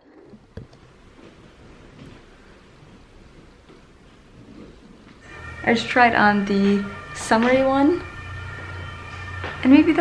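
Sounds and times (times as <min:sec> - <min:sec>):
faint rustling: 0:00.0 - 0:05.3.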